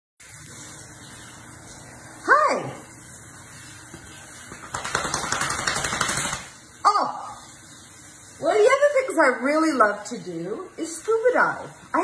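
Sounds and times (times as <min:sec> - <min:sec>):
shower water running: 0:00.2 - 0:12.0.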